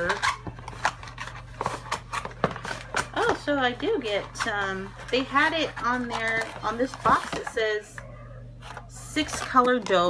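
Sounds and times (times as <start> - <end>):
plastic rustling: 0.0 - 8.0, 8.6 - 10.0.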